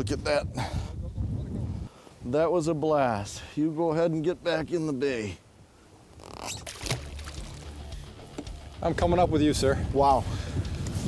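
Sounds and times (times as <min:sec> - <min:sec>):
fish splashing in water: 0:06.6 - 0:08.0.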